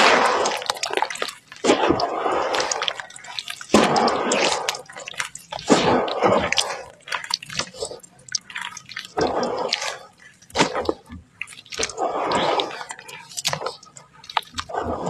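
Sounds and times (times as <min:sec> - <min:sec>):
hands squelching wet sand in water: 0:00.0 - 0:15.0
water dripping: 0:00.0 - 0:15.0.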